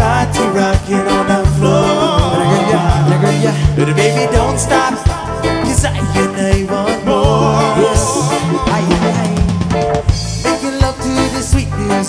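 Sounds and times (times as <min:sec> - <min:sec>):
reggae band playing: 0:00.0 - 0:12.0.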